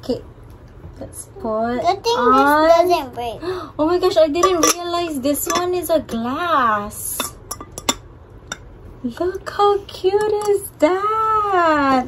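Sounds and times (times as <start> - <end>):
glass lid clicking and clinking: 4.4 - 4.8, 5.4 - 5.7, 7.2 - 8.6.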